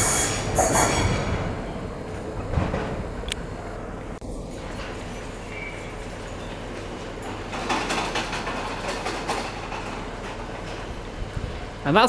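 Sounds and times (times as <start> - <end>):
train wheels rattling on track: 0.0 - 12.0.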